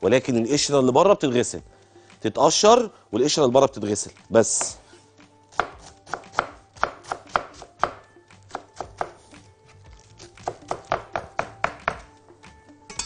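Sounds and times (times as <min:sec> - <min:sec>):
knife chopping lettuce on board: 0:05.5 - 0:12.1.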